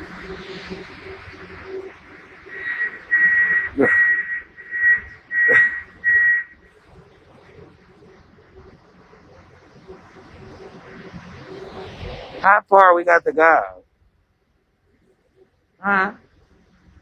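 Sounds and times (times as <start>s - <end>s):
short high beeps: 2.5s - 6.5s.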